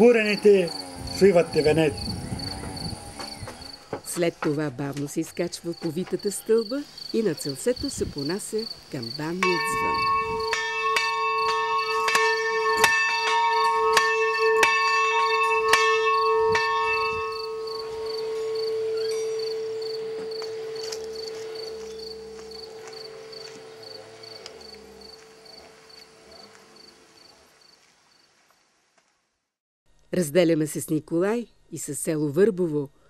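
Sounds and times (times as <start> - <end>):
church bell ringing: 9.4 - 25.9.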